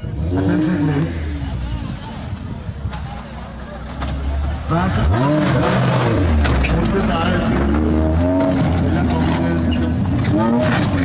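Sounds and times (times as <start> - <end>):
engine revving hard: 0.0 - 1.6, 4.4 - 11.0.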